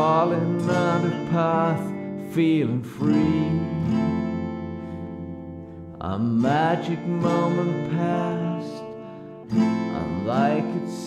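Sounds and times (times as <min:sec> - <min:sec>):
guitar chord ringing: 0:00.0 - 0:11.0.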